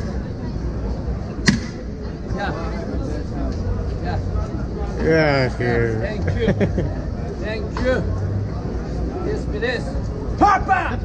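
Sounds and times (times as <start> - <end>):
street hubbub: 0.0 - 11.0.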